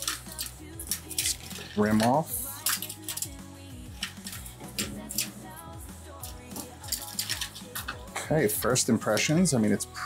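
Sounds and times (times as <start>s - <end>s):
plastic clicks and crackles: 0.0s - 3.3s, 6.2s - 8.0s
background music with bass line: 0.0s - 10.0s.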